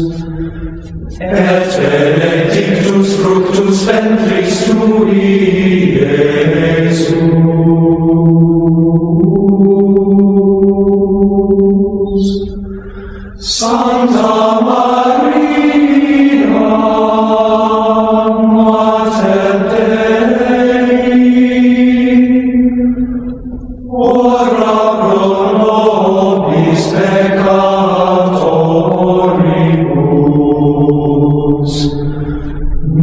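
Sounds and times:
voices singing chant: 0:00.0 - 0:33.0.

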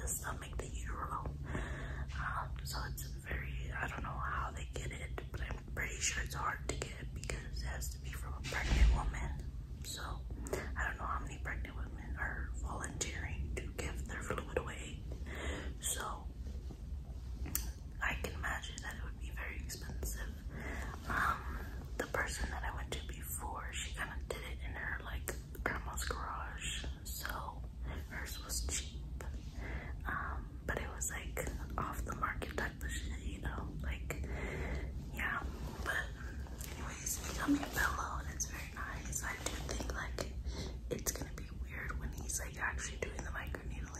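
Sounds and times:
woman whispering: 0:00.0 - 0:16.6, 0:17.4 - 0:43.9
low room hum: 0:00.0 - 0:43.9.

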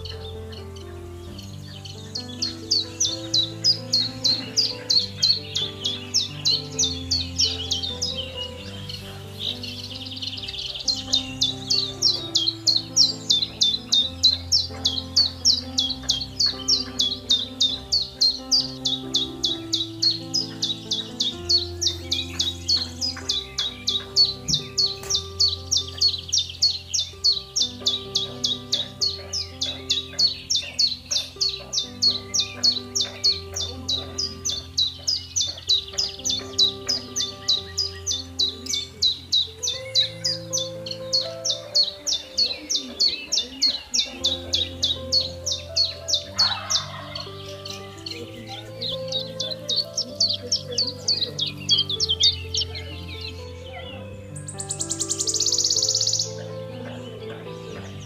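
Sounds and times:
high bird chirps: 0:00.0 - 0:58.0
low sustained background music: 0:00.0 - 0:58.0.

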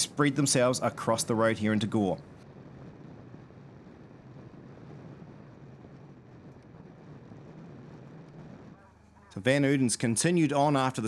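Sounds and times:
low engine hum: 0:00.0 - 0:11.0
wind rush on microphone: 0:00.0 - 0:11.0.

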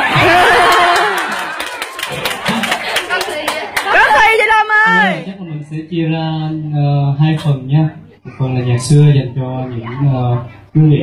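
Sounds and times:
audience cheering and clapping: 0:00.0 - 0:05.1
crowd voices: 0:07.8 - 0:11.0.

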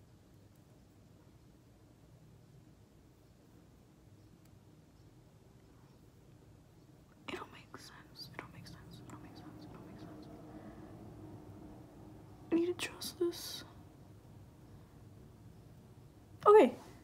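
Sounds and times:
woman whispering: 0:07.2 - 0:10.6, 0:12.5 - 0:13.8.

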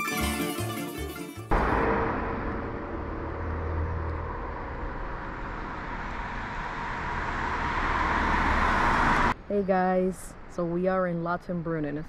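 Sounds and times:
low rumble: 0:01.5 - 0:09.4
outdoor rushing noise: 0:01.5 - 0:09.4.

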